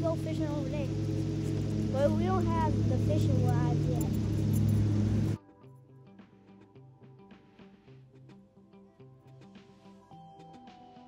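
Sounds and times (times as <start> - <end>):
low engine hum: 0.0 - 5.4
outdoor noise: 0.0 - 5.4
faint plucked guitar music: 0.0 - 11.0.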